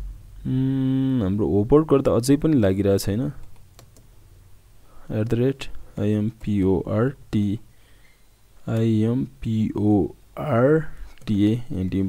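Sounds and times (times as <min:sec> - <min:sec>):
computer keyboard keystrokes: 0:03.4 - 0:04.1.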